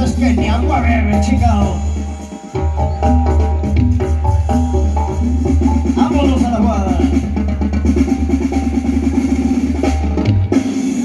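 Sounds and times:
loud music with drums and bass: 0.0s - 11.0s.

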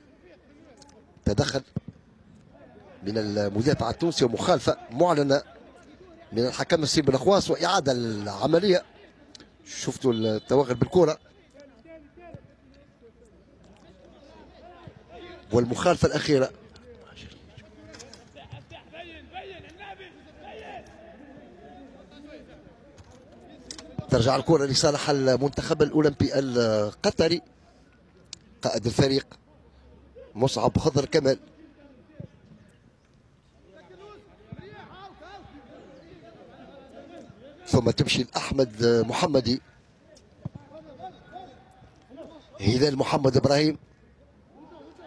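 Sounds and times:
open-air stadium ambience: 0.0s - 45.0s.

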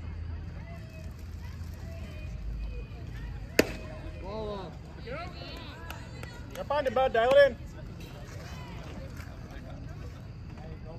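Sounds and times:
baseball smacking into mitt: 3.6s - 3.9s.

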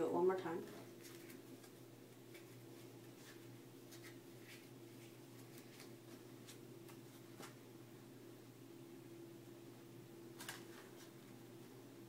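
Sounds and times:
low room hum: 0.0s - 12.0s
playing cards clicking: 10.4s - 10.9s.

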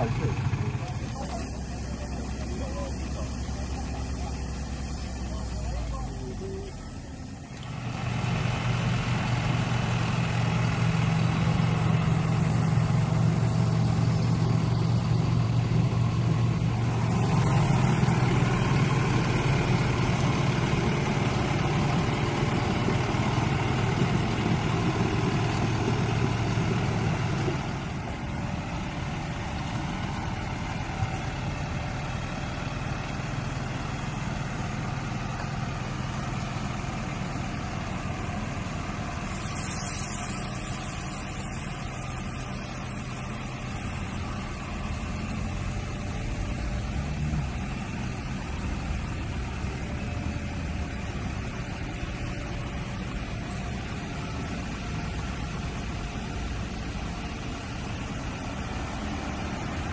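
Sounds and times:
truck engine running: 0.0s - 59.9s.

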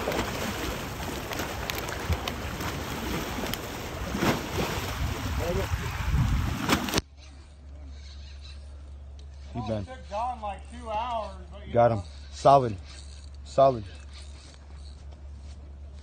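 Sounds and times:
small waves washing against steps: 0.0s - 7.0s
steady low hum: 0.0s - 16.0s
wind on microphone: 3.9s - 7.0s.

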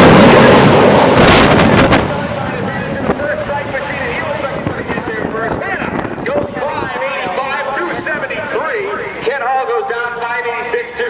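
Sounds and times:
jet dragster rumble: 0.0s - 11.0s
people talking: 2.1s - 11.0s.

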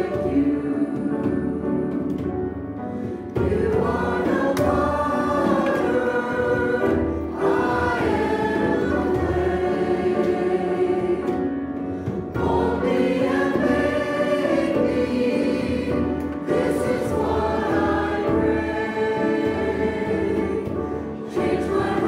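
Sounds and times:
congregation singing worship song: 0.0s - 22.0s.

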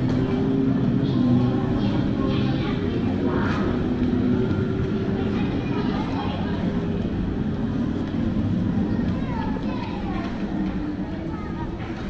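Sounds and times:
indistinct shoppers' voices: 0.0s - 12.0s.

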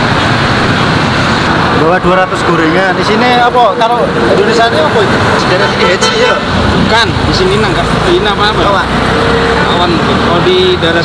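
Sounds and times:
road traffic noise: 0.0s - 11.0s
voices talking: 1.6s - 11.0s.

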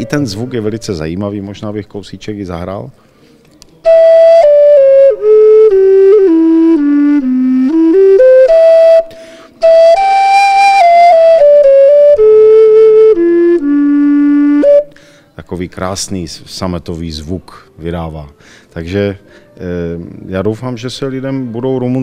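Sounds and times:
wooden flute melody: 0.0s - 1.4s, 3.8s - 15.0s.

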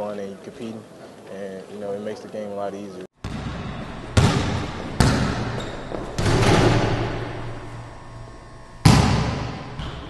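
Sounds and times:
heavy boom-like hit: 8.8s - 9.8s.

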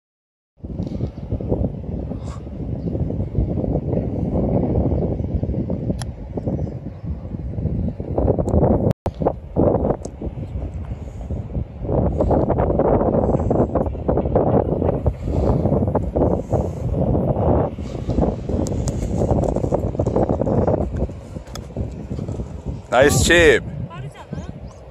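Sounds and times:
wind buffeting microphone: 0.6s - 24.9s.

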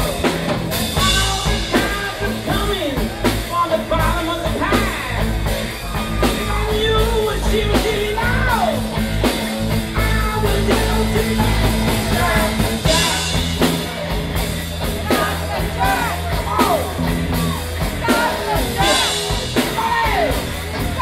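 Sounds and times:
drum kit: 0.0s - 21.0s
electric guitars: 0.0s - 21.0s.

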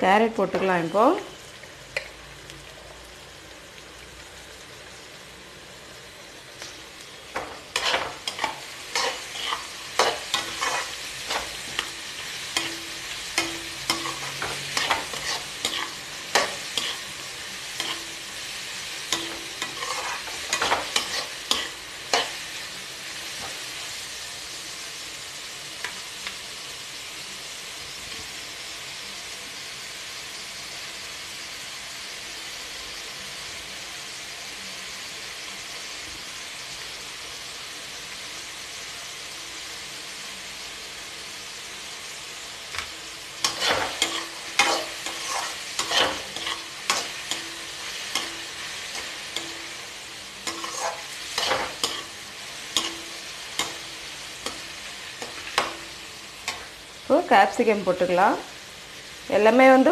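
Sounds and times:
vegetables sizzling: 0.0s - 59.9s
metal spatula scraping wok: 7.2s - 23.8s, 43.2s - 57.0s.

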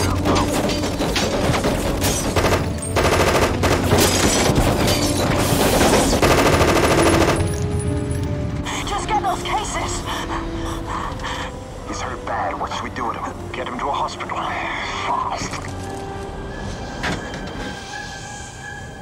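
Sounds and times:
film score: 0.0s - 19.0s
automatic gunfire: 2.3s - 4.1s, 5.8s - 7.5s.

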